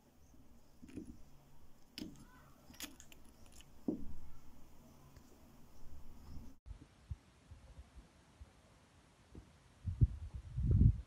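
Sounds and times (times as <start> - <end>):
stone-on-stone clicks: 0.0 - 6.6.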